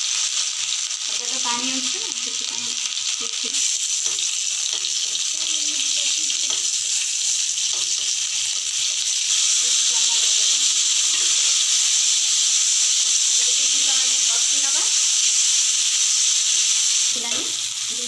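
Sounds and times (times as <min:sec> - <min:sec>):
tomatoes sizzling in hot oil: 0:00.0 - 0:18.0.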